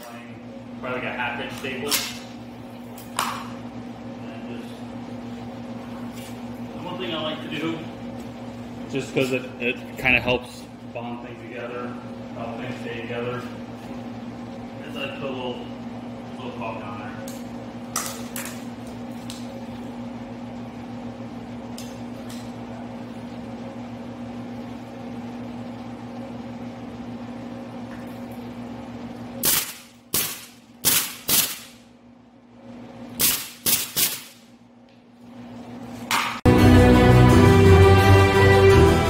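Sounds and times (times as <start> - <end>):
steady hum: 0.0 - 39.0
pneumatic stapler shots: 29.4 - 31.8, 33.2 - 34.4.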